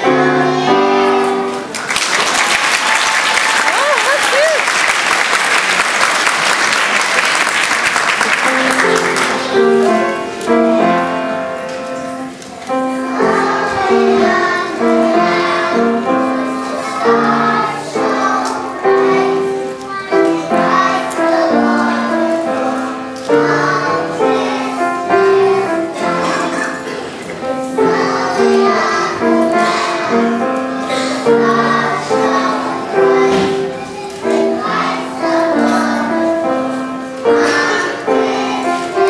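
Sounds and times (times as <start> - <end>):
children singing: 0.0 - 1.8, 8.4 - 39.0
musical accompaniment: 0.0 - 1.8, 8.0 - 39.0.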